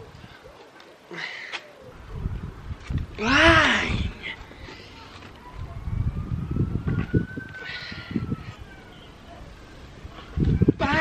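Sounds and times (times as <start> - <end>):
wind buffeting microphone: 1.9 - 11.0.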